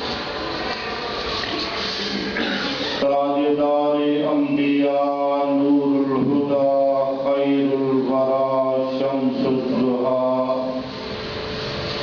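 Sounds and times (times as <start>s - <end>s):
man chanting into a microphone: 3.0s - 11.0s.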